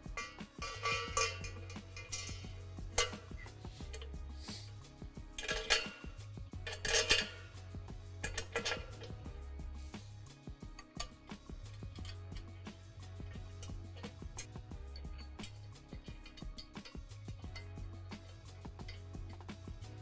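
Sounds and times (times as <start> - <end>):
metal hardware clinking: 0.0 - 4.8, 5.4 - 9.4, 10.7 - 19.6
background music with bass: 0.0 - 20.0.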